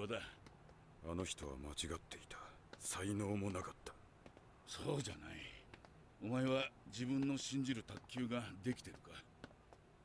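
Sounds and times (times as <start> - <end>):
man speaking: 4.7 - 9.3.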